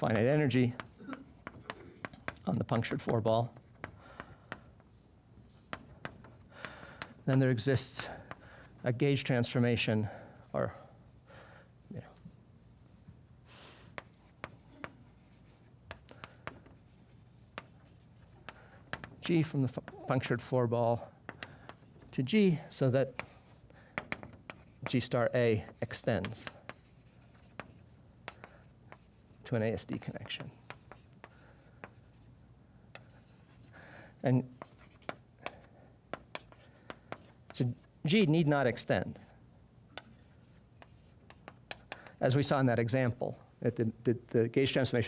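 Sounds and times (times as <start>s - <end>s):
chalk scratching on blackboard: 0.0s - 4.8s, 5.4s - 8.7s, 12.6s - 13.0s, 13.9s - 20.0s, 21.0s - 22.2s, 23.0s - 33.7s, 34.6s - 42.4s
chalk tapping on board: 0.0s - 8.6s, 13.9s - 20.0s, 21.0s - 22.2s, 23.0s - 32.3s, 32.9s - 33.7s, 34.6s - 38.0s, 39.9s - 42.2s.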